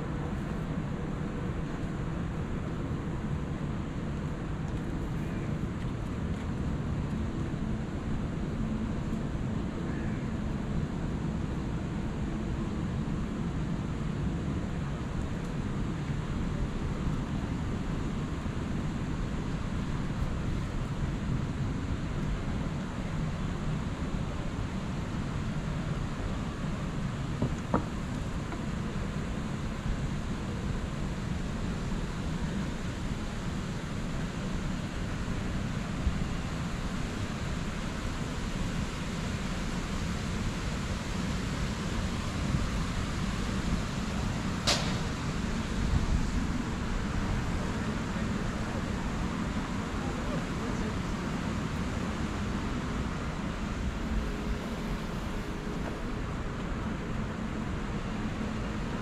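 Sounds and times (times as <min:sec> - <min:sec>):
urban machinery hum: 0:00.0 - 0:59.0
distant traffic hum: 0:14.3 - 0:37.0, 0:38.4 - 0:59.0.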